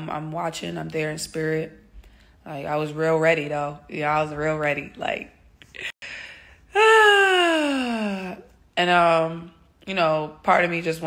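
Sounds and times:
woman drawing breath: 6.0 - 6.7
woman moaning: 6.7 - 8.5.

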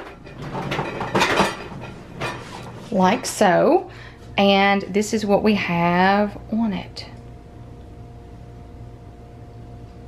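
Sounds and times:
plastic shelves and bottles rattling: 0.0 - 3.4
cart rolling on tile floor: 0.0 - 3.5.

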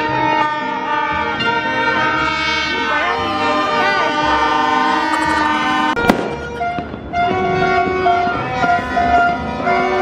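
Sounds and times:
plastic party horns blowing: 2.1 - 10.0
firecracker bang: 4.9 - 9.4.

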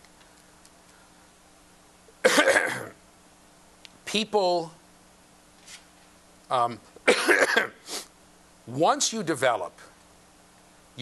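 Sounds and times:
man coughing: 2.2 - 3.0, 7.0 - 7.8.

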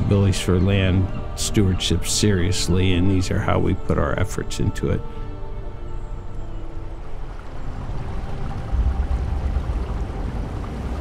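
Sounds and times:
low rushing rumble: 7.2 - 11.0.

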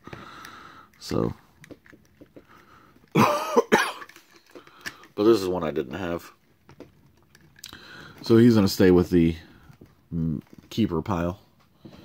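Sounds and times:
man coughing: 3.1 - 4.1.

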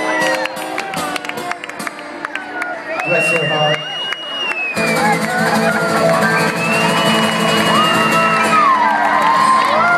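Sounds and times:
audience whooping: 0.0 - 1.3, 2.6 - 9.9.

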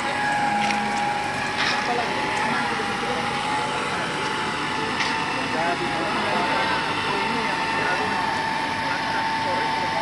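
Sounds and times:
indistinct voices: 0.0 - 10.0
steady hum: 0.0 - 10.0.

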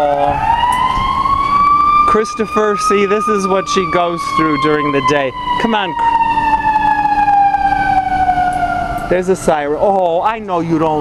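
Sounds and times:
emergency vehicle siren: 0.0 - 11.0
street traffic: 0.0 - 11.0.

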